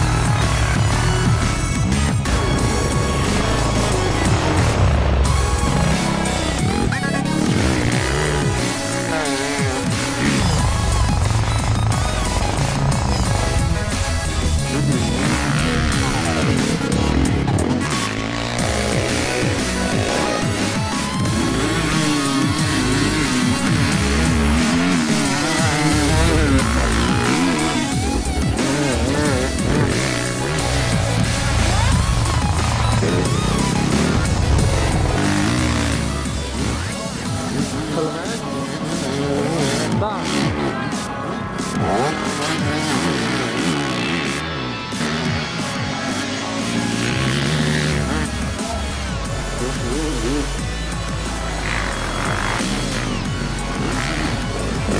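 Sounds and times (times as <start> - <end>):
dirt bike engine revving: 0.0 - 54.9
loud music soundtrack: 0.0 - 54.9.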